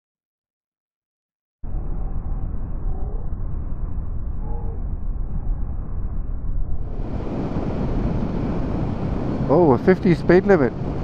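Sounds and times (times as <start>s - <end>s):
motorcycle wind and road noise: 6.6s - 11.0s.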